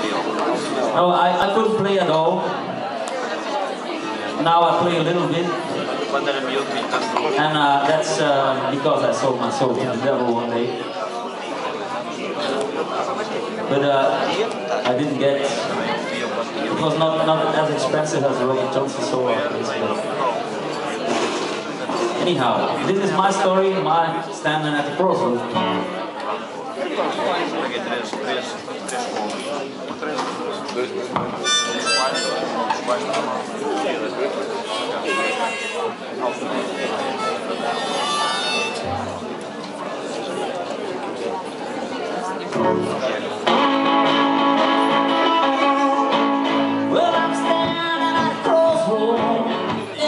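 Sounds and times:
voices chattering: 0.0 - 50.0
acoustic guitar blues-folk: 25.5 - 26.0, 42.5 - 50.0
harmonica chord: 31.4 - 32.5, 34.8 - 35.8, 37.2 - 38.8, 42.6 - 50.0.

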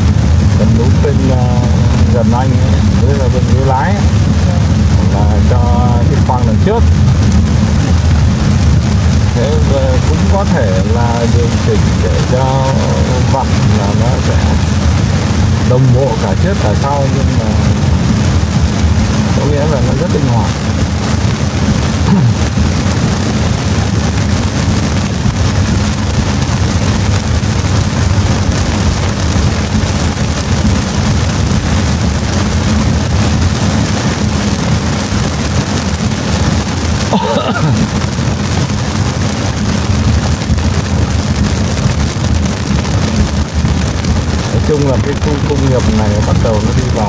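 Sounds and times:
heavy rain on car roof: 0.0 - 47.0
tyres rumbling on wet road: 0.0 - 47.0
person laughing: 37.1 - 38.0.

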